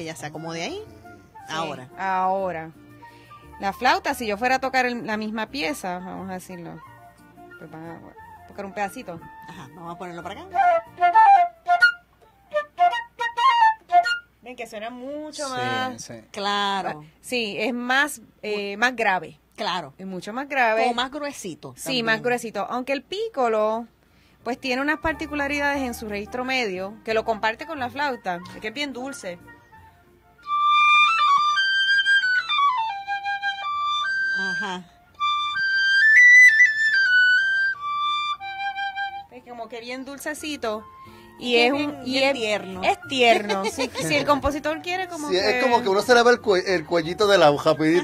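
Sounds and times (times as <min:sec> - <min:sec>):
flute playing quick notes: 0:10.5 - 0:14.3, 0:30.4 - 0:39.3.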